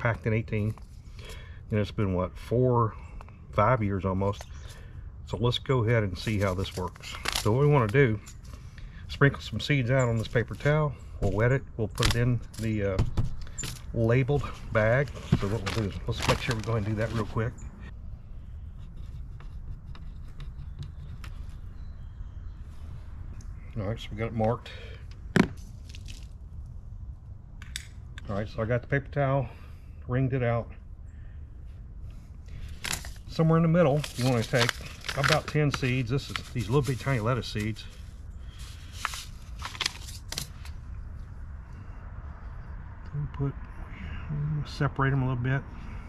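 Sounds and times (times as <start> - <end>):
low steady rumble: 0.0 - 46.0
paper seed packet crackling: 6.2 - 8.2, 14.1 - 17.5, 25.7 - 26.4, 32.6 - 40.7.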